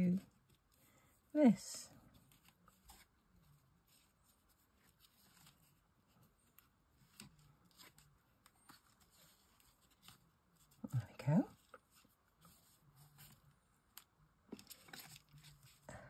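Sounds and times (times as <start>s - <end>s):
paper and card rustling: 2.1s - 16.0s.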